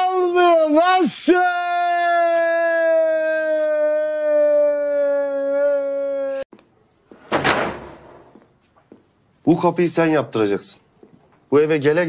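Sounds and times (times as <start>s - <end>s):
man's long held cry: 0.8s - 6.5s
wooden door slamming: 7.2s - 8.4s.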